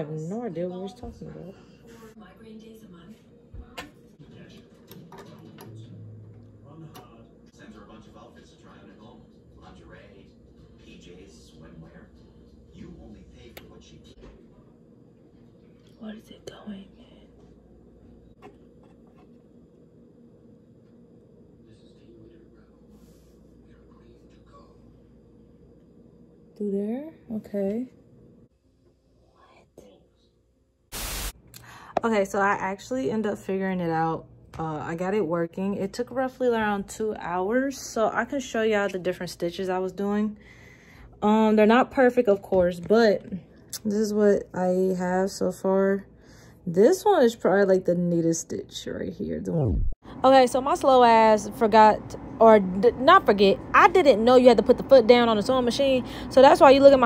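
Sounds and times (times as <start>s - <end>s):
television talking: 0.0s - 17.6s, 49.1s - 57.0s
low machine hum: 0.0s - 57.0s
tv static hiss: 30.9s - 31.4s.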